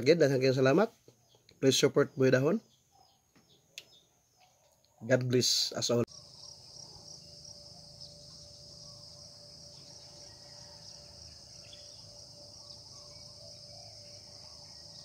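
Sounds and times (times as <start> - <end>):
insects chirring: 5.8 - 15.0
thin steady hum: 6.0 - 15.0.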